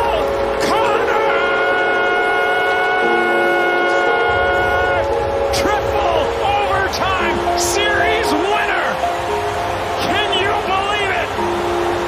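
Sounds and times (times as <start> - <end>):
man's voice: 0.0 - 1.5, 5.5 - 9.0, 10.0 - 11.4
arena goal horn blast: 0.6 - 5.2.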